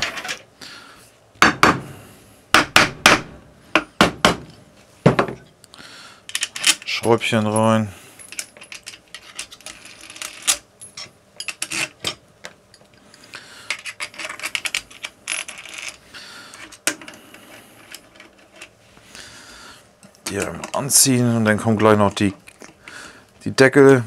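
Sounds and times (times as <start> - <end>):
hand tools clicking and scraping: 6.3 - 18.8.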